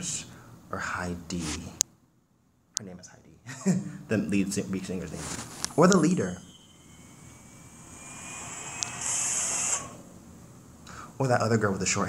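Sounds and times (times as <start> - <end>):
bright hiss: 5.0 - 11.2
whooshing swell: 5.1 - 10.8.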